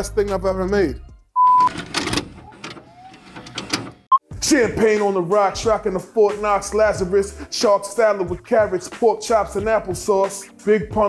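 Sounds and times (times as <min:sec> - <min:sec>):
short electronic beep: 0:01.4 - 0:01.8
tape mechanism clicking and whirring: 0:01.6 - 0:04.1.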